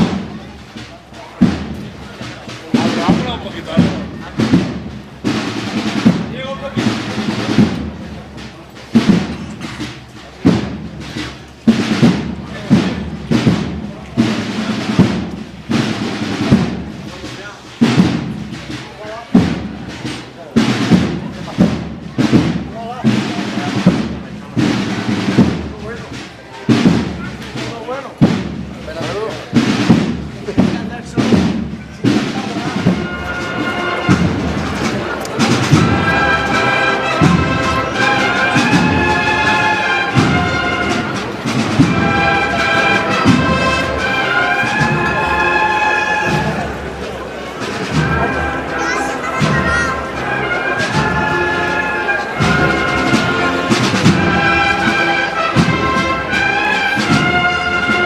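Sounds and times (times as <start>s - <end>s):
bass drum beating: 0.0s - 45.5s
people's voices: 0.0s - 58.0s
snare drum beating: 0.0s - 58.0s.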